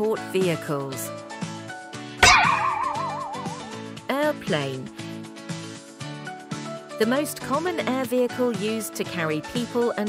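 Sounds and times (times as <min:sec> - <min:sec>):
light background music: 0:00.0 - 0:10.0
cartoon hit with wavering tone: 0:02.2 - 0:03.9.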